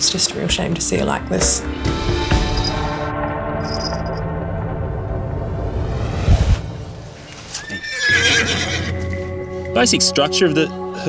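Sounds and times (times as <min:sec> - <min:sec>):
horse whinnying: 0:07.5 - 0:09.2.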